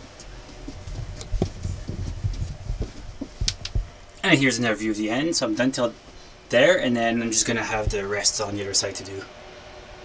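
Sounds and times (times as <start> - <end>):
sharp clicks: 3.5 - 3.8.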